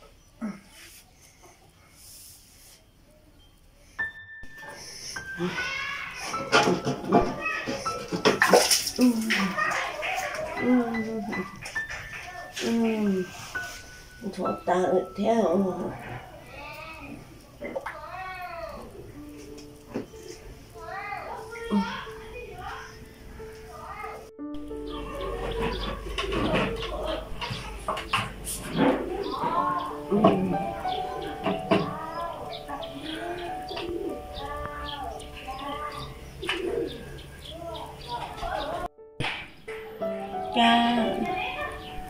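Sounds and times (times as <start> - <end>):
birds calling: 4.4 - 42.0
drawn-out animal call: 24.7 - 38.8
sharp knocks: 39.2 - 39.8.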